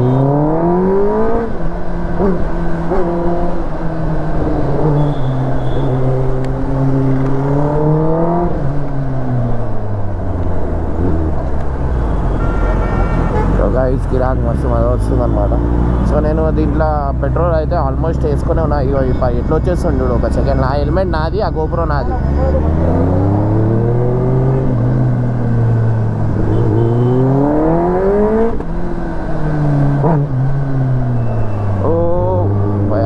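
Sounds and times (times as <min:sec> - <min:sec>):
motorcycle engine revving: 0:22.0 - 0:33.0.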